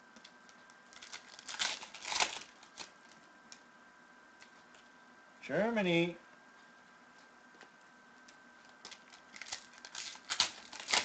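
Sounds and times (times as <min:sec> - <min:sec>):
card wrappers crinkling and rustling: 0:00.2 - 0:03.6, 0:08.6 - 0:11.0.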